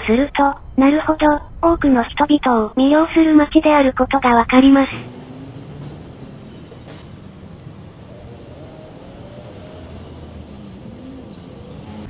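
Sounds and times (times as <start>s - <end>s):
street traffic hum: 4.1s - 12.0s
faint rising whine: 4.6s - 12.0s.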